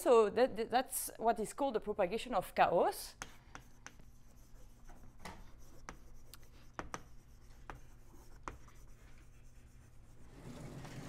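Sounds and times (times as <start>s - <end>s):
chalk scratching on blackboard: 3.1s - 11.0s.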